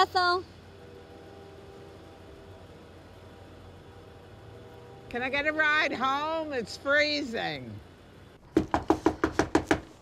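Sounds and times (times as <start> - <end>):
rapid knocking on door: 8.5 - 9.9.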